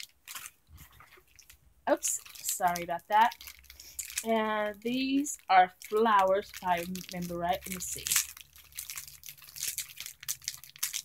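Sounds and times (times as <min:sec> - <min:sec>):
plastic package crinkling: 0:00.0 - 0:11.0.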